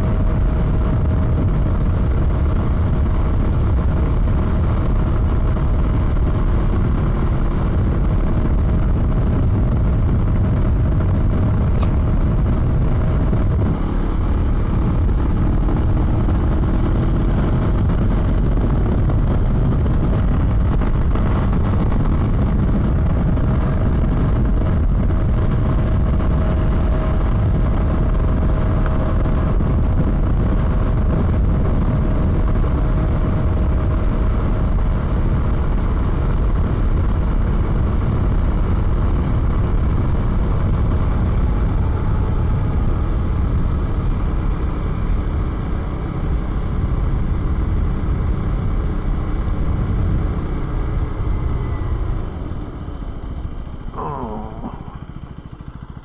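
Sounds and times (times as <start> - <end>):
motorcycle engine cruising: 0.0 - 56.0
wind and road noise: 0.0 - 56.0.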